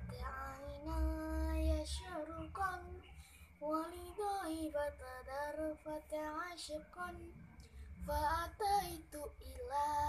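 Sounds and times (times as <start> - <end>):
girl singing unaccompanied: 0.0 - 10.0.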